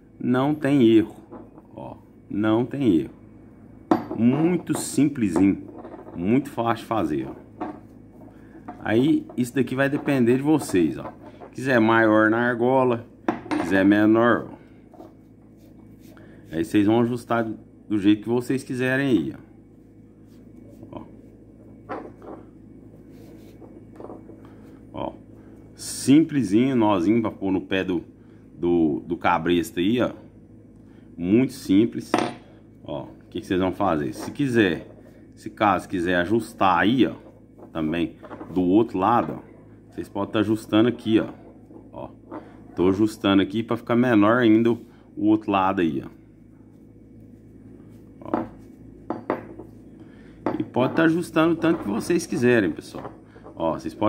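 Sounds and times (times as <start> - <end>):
steady low hum: 0.0 - 54.0
metal ring knocking on wood: 3.9 - 4.2, 13.3 - 13.8, 48.3 - 49.7
rope rubbing on metal ring: 14.8 - 16.8, 19.8 - 22.2, 22.8 - 24.8.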